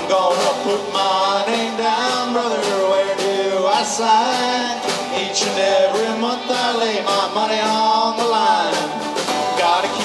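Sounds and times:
person singing: 0.0s - 10.0s
snare drum: 0.0s - 10.0s
strummed acoustic guitar: 0.0s - 10.0s.

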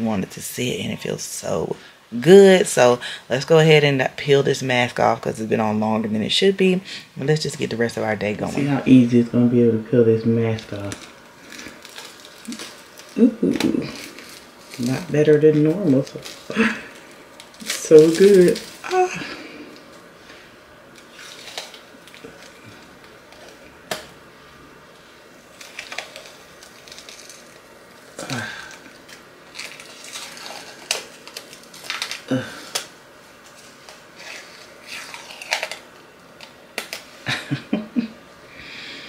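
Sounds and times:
face mask peeling off skin: 10.7s - 15.1s, 15.7s - 20.0s, 20.9s - 24.1s, 25.5s - 37.2s.

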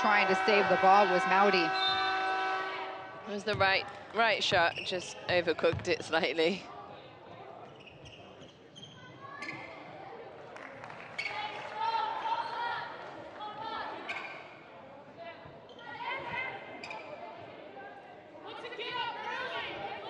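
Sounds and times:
basketball bouncing on hardwood: 5.3s - 6.0s.

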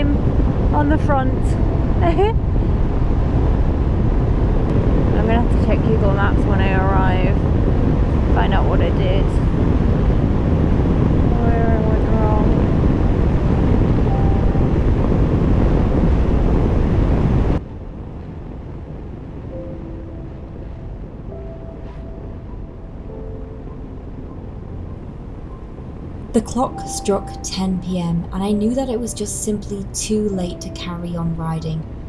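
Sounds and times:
soft background music: 0.0s - 32.0s
wind buffeting microphone: 0.0s - 32.0s.

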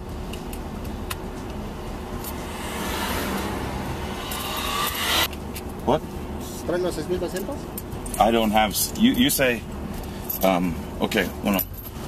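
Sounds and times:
traffic rushing past: 0.0s - 10.1s.

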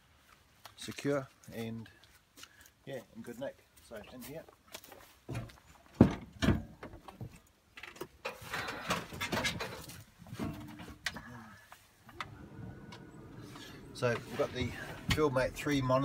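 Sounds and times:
seat creaking: 12.0s - 16.0s.

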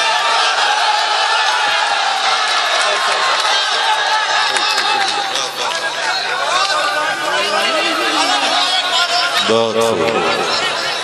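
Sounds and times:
large crowd talking and calling: 0.0s - 11.0s.

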